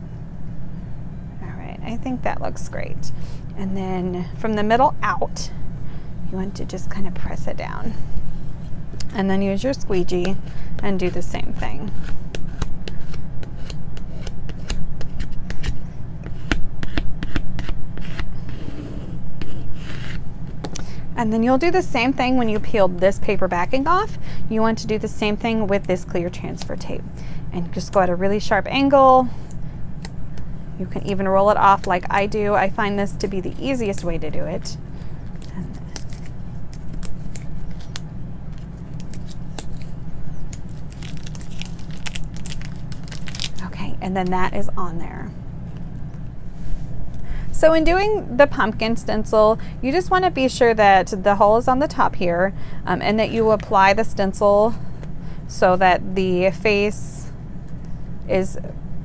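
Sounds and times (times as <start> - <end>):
steady low hum: 0.0 - 59.0
tape peeling with crackling ticks: 35.3 - 43.6.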